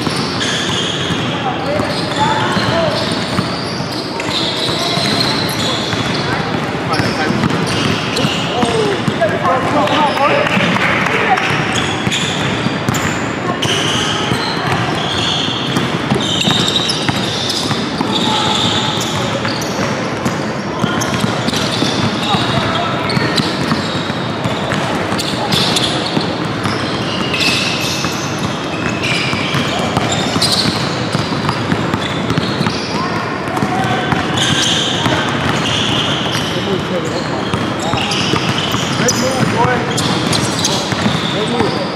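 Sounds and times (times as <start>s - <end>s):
basketballs dribbling on hardwood: 0.0s - 41.9s
sneakers squeaking: 0.0s - 41.9s.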